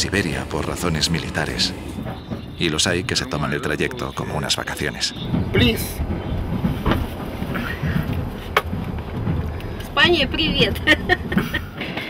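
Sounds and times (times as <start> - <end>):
passenger voices: 0.0 - 8.6
train carriage rumble: 0.0 - 12.0.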